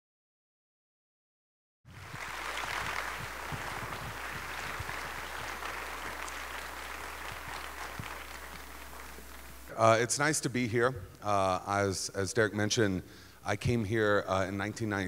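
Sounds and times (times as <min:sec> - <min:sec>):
audience applauding: 0:01.9 - 0:09.7
low electrical hum: 0:01.9 - 0:15.0
man speaking: 0:09.7 - 0:15.0.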